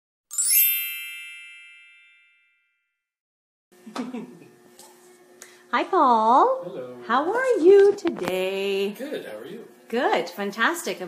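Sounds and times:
bright bell-like chime: 0.3s - 3.0s.

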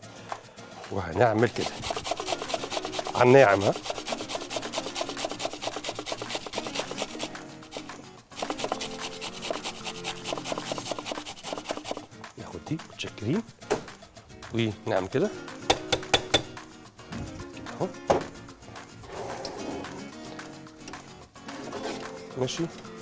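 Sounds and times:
cucumber grated on metal grater: 1.3s - 12.1s.

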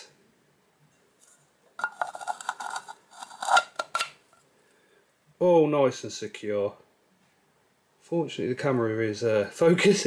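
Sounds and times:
plastic lid clicking and rattling: 1.8s - 4.1s
plastic squeaking on plastic: 1.8s - 4.2s.

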